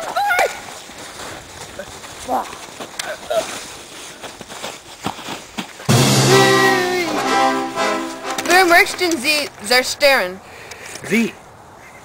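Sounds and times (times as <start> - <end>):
footsteps running through snow: 0.0 - 5.9
loud music: 5.9 - 9.0.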